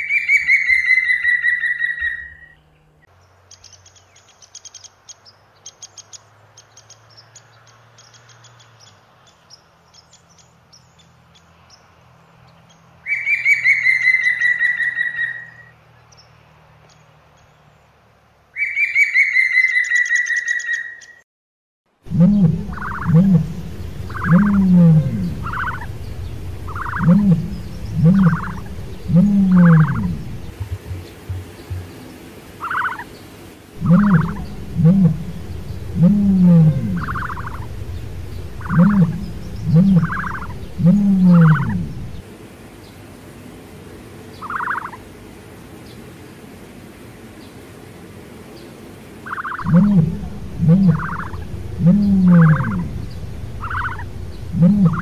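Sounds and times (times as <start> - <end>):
ostriches low call: 22.0 - 33.1, 33.7 - 42.2, 49.6 - 55.0
woodpecker calls: 22.1 - 33.1, 33.8 - 42.2, 44.4 - 45.0, 49.3 - 55.0.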